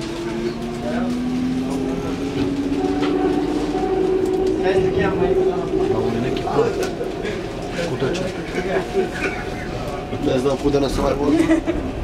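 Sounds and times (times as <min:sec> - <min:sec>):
train carriage rumble: 0:00.0 - 0:12.0.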